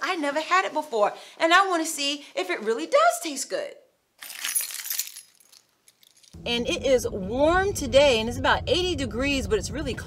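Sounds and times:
keys jingling against glass bowl: 4.2 - 6.4.

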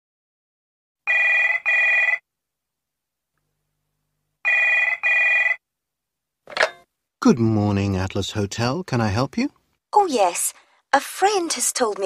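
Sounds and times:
telephone double ring: 1.1 - 2.2, 4.4 - 5.6.

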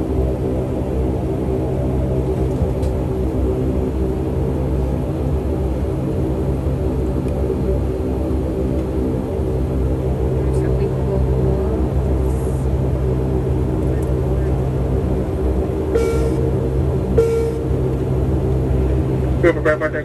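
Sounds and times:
airliner cabin engine hum: 0.0 - 20.0.

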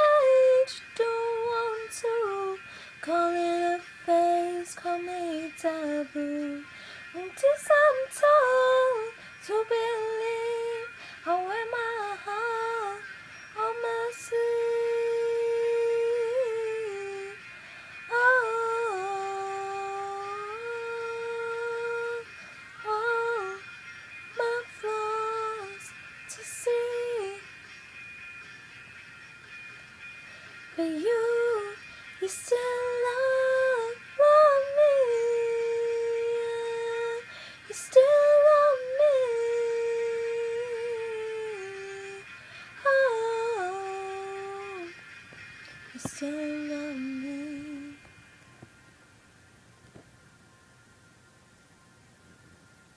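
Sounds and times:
girl singing wordless held notes: 0.0 - 23.7, 24.3 - 27.6, 30.3 - 48.7.

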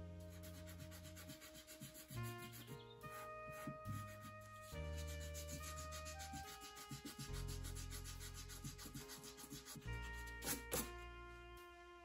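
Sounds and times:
soft background music: 0.0 - 12.0
eraser rubbing on paper: 0.2 - 11.0.

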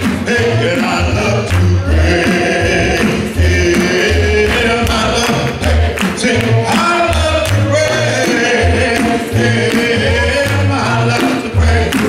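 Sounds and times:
deep bass line: 0.0 - 12.0
male voices singing gospel: 0.0 - 12.0.

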